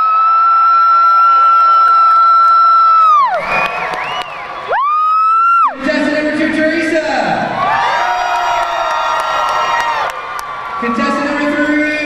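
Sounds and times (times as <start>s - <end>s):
spectator shouting woo: 0.0s - 5.8s
crowd cheering: 0.0s - 6.3s, 7.4s - 12.0s.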